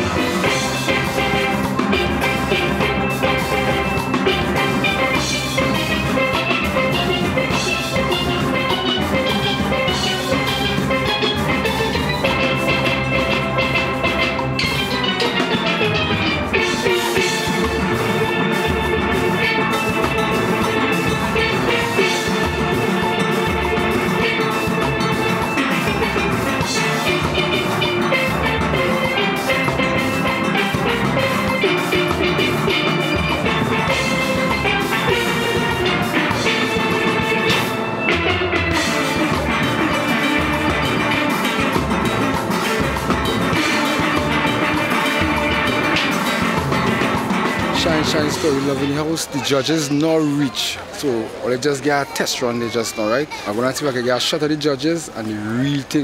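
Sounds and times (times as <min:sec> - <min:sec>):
steelpan orchestra playing calypso: 0:00.0 - 0:56.0.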